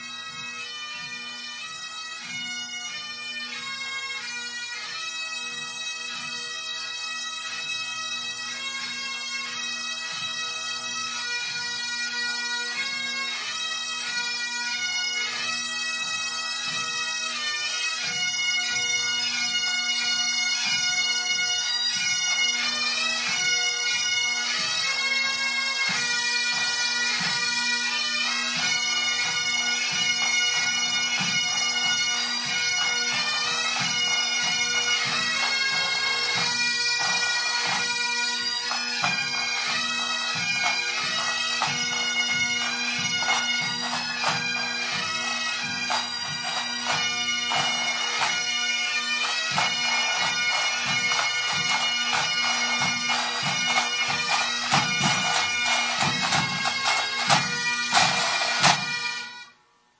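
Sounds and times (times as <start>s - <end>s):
bagpipes playing over drones: 0.0s - 59.6s
drum beats: 28.6s - 59.1s.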